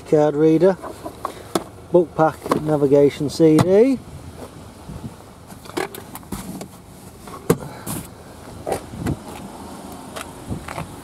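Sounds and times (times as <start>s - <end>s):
faint outdoor background: 0.0s - 11.0s
handling clicks and knocks: 0.7s - 3.8s, 5.5s - 7.6s.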